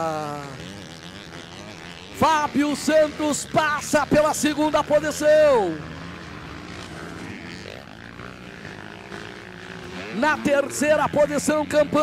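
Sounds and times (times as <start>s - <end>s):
motocross bike engines droning: 0.0s - 12.0s.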